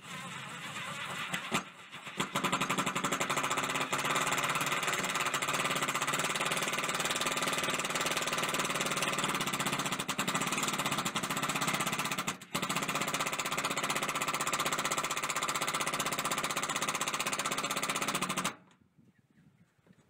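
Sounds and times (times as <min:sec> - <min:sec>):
impact driver hammering screws: 0:01.3 - 0:18.6.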